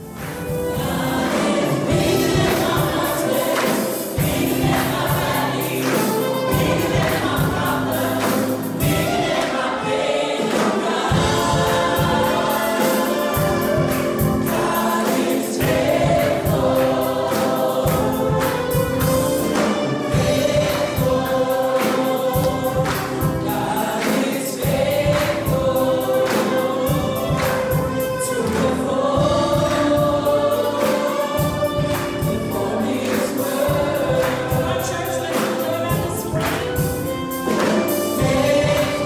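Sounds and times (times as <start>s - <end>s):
band with steady beat: 0.0s - 39.0s
choir singing gospel: 0.0s - 39.0s.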